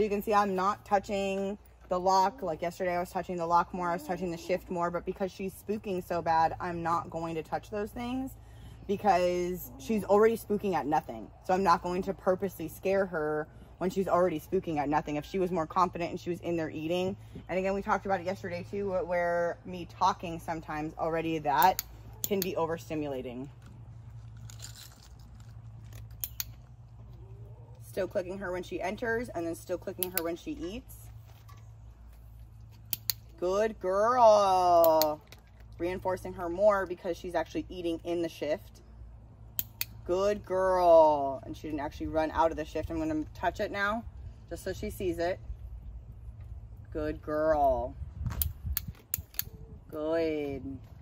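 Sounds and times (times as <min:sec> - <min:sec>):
fox crunching dry food: 0:23.5 - 0:27.0.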